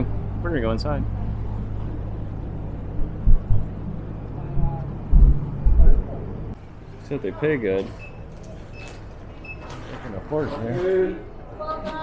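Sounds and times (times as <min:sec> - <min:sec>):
wind rumbling on microphone: 0:02.4 - 0:06.6.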